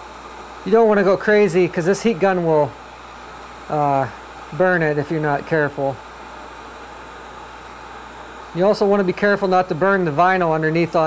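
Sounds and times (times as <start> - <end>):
heat gun blower hissing: 0.0 - 11.0.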